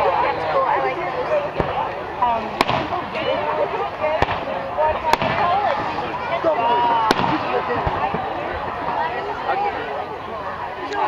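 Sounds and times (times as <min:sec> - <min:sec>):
firework bang: 0:02.6 - 0:03.0, 0:05.1 - 0:05.6, 0:07.0 - 0:08.3.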